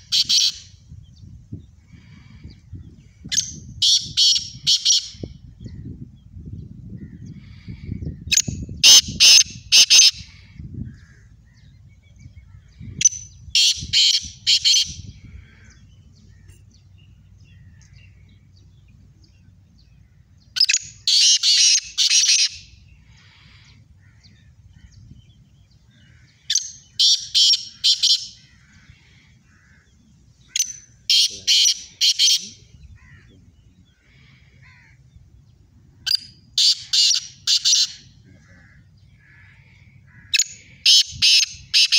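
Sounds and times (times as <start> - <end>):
francolins calling: 0.0 - 41.9.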